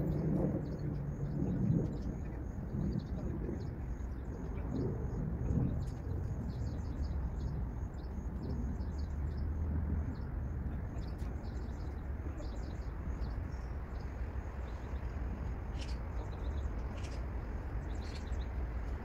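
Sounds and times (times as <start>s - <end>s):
low rumble: 0.0s - 19.0s
small birds chirping: 0.0s - 19.0s.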